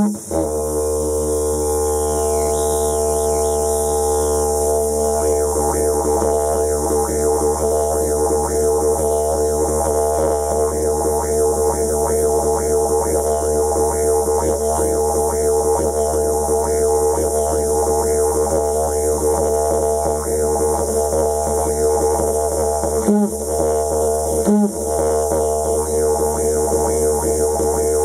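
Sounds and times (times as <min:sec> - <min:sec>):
didgeridoo drone: 0:00.0 - 0:28.0.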